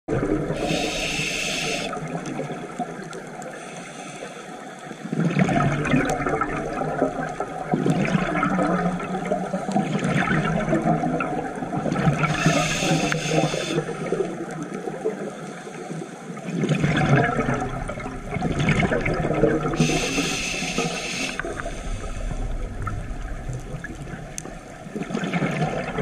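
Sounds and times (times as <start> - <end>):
regulator inhale hissing: 0.6 - 2.0, 3.5 - 5.1, 12.2 - 14.1, 19.8 - 22.6
bubbling exhalation underwater: 5.2 - 13.0, 16.6 - 20.3.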